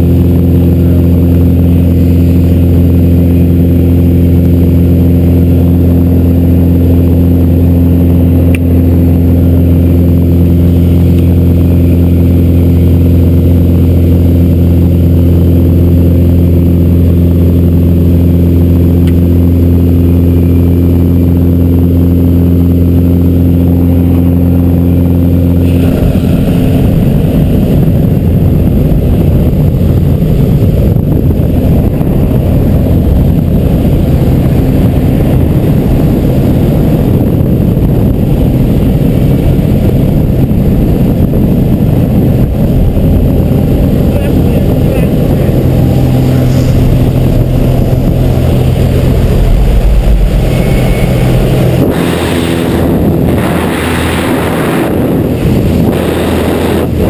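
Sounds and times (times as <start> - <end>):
plane engine and propeller droning: 0.0 - 57.0
rushing wind noise: 0.0 - 57.0.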